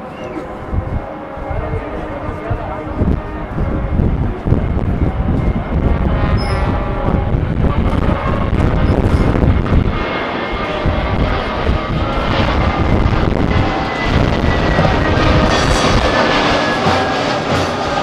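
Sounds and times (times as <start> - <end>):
wind rumble on microphone: 0.0 - 18.0.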